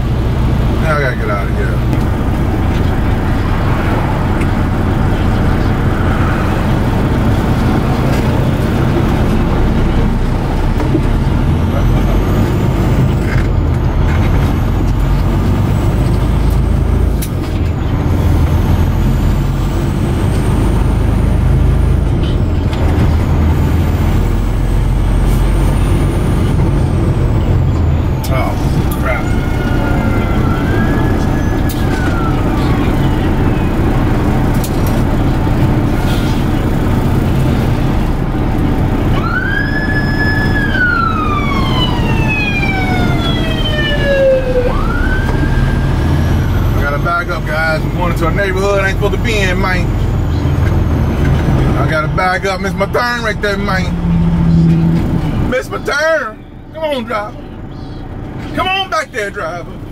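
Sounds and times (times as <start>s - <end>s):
truck engine and road rumble: 0.0s - 59.9s.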